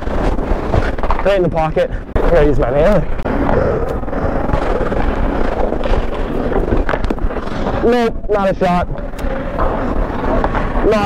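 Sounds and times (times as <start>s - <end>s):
steady rushing noise: 0.0s - 11.0s
faint clicks: 8.9s - 9.3s.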